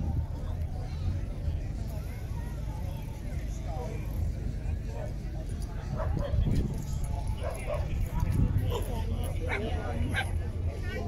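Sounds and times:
crowd chatter: 0.0s - 11.0s
wind buffeting microphone: 5.8s - 9.2s.

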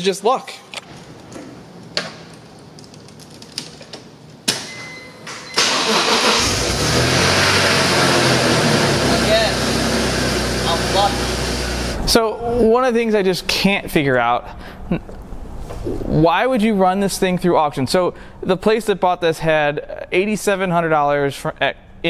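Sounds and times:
car engine starting and running: 5.6s - 12.0s.

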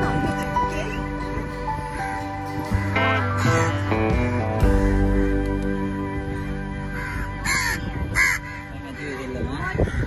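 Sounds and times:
crows cawing: 1.2s - 10.0s.

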